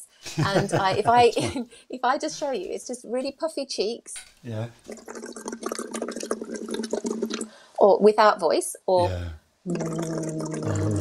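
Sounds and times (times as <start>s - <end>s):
water bubbling: 4.7s - 7.6s, 9.1s - 11.0s
person humming through straw: 9.0s - 11.0s.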